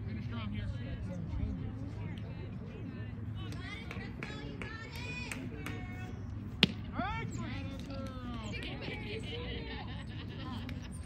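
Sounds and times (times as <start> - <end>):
voices calling and chattering: 0.0 - 11.0
bat cracking a ball: 6.6 - 6.8.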